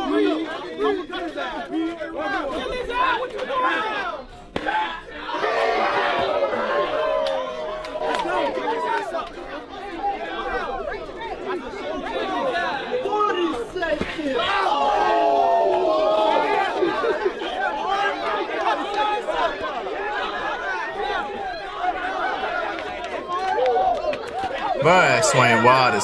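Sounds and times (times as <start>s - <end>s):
crowd shouting and talking: 0.0s - 26.0s.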